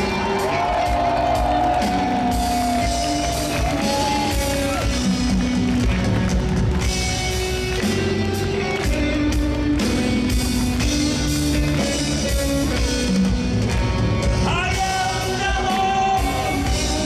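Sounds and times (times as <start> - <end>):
drum kit: 0.0 - 17.0
electric guitars: 0.0 - 17.0.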